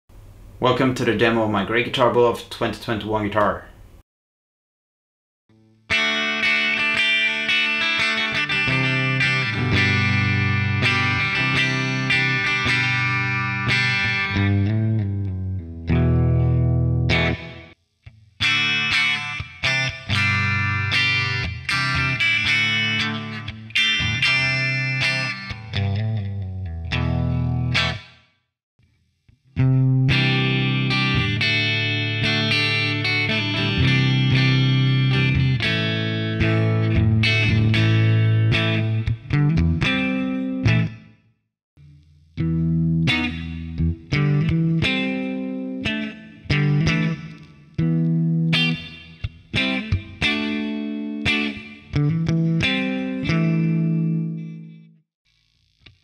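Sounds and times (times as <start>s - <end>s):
distorted electric guitar riffs: 5.8s - 28.2s, 29.5s - 41.1s, 41.8s - 54.8s.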